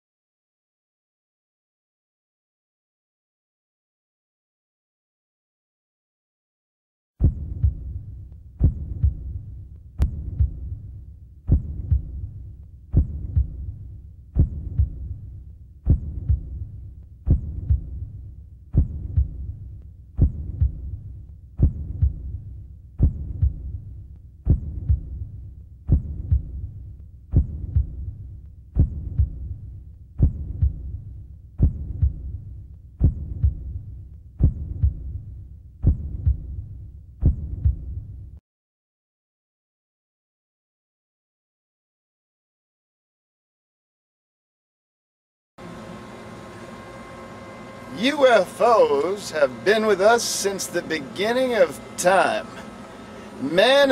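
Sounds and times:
low throbbing pulse: 7.2 - 38.4.

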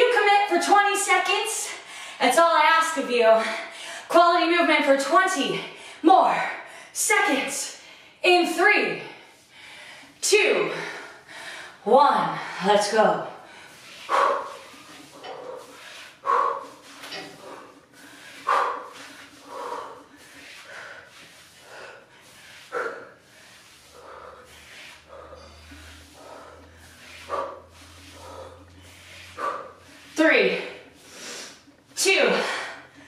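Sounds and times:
quiet breath: 13.3 - 31.7.

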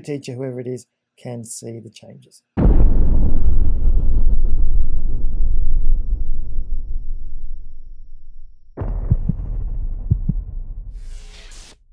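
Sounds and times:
steady low rumble: 2.6 - 11.2
low heartbeat-like thumps: 2.6 - 11.5.

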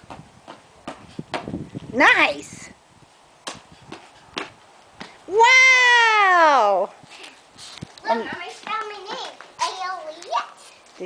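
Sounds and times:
child's sneakers slapping on concrete: 0.0 - 2.3, 3.4 - 5.4, 7.1 - 11.0.

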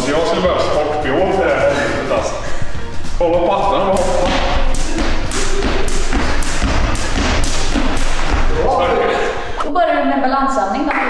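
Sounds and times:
voices: 8.5 - 11.0.

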